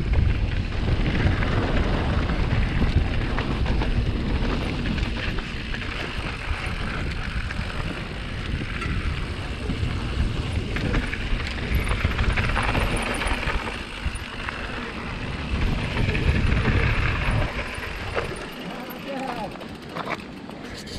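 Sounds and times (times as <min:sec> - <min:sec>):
wind buffeting microphone: 0:00.0 - 0:18.8
bike rattling: 0:00.0 - 0:20.9.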